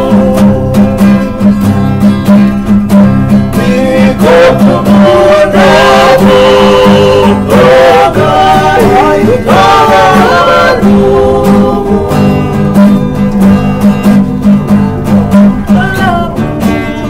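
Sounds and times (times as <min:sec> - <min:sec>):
men singing in harmony: 0:00.0 - 0:01.2, 0:03.5 - 0:14.0
strummed acoustic guitars: 0:00.0 - 0:17.0.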